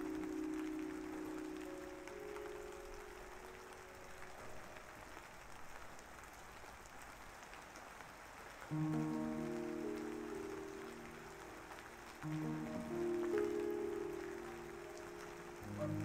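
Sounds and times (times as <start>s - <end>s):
gentle background music: 0.0s - 6.3s, 8.6s - 16.0s
steady rain: 0.0s - 16.0s.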